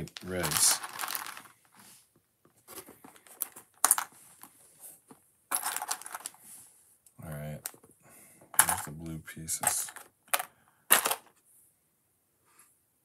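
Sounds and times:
plastic bricks clicking and rattling: 0.0s - 1.5s, 3.0s - 4.1s, 5.5s - 6.4s, 8.5s - 8.9s, 9.6s - 11.4s.

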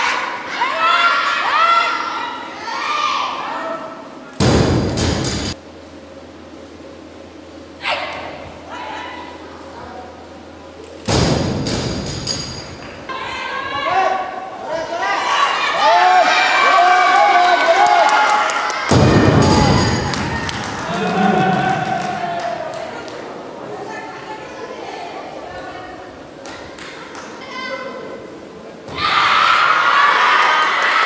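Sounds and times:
crowd shouting and cheering: 13.0s - 23.6s, 28.9s - 31.0s.

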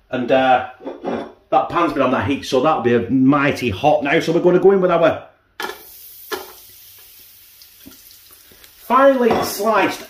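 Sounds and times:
garlic sizzling in oil: 5.6s - 10.0s.

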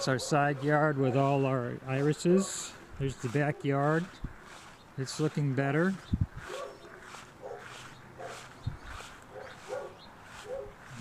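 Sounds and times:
dog barking: 0.0s - 1.3s, 6.4s - 8.5s, 9.3s - 10.9s
footsteps through grass: 0.0s - 11.0s.

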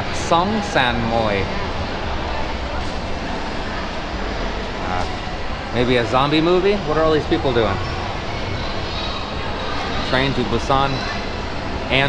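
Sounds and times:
distant crowd noise: 0.0s - 12.0s
ventilation hum: 0.0s - 12.0s.

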